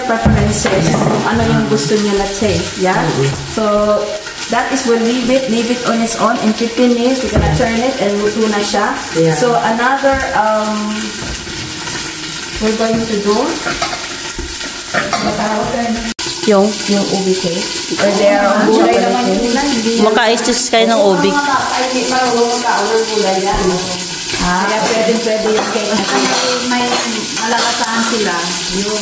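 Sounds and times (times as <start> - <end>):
woman's voice: 0.0 - 11.1, 12.6 - 13.6, 15.2 - 29.0
chicken sizzling in skillet: 0.0 - 29.0.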